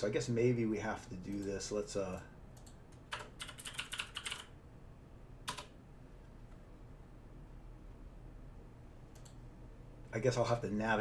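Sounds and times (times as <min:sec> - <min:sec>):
computer keyboard typing: 0:02.6 - 0:04.6, 0:05.4 - 0:05.8.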